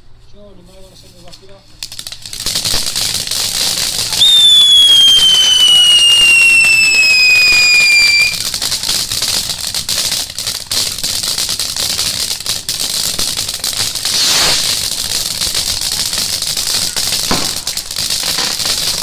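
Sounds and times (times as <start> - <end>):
firework crackling hiss: 1.7 - 19.0
falling firework whistle: 4.0 - 8.5, 14.0 - 14.8.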